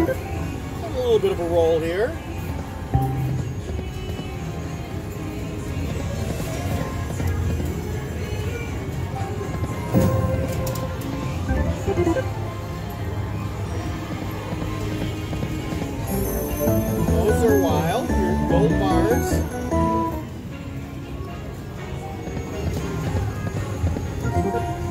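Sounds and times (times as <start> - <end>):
slot machine game music: 0.0 - 2.1, 2.8 - 3.6, 9.3 - 13.2, 16.0 - 20.6, 24.1 - 24.9
loud slot machine hit: 10.0 - 10.6
slot machine reel spinning: 10.0 - 12.5, 16.1 - 20.2.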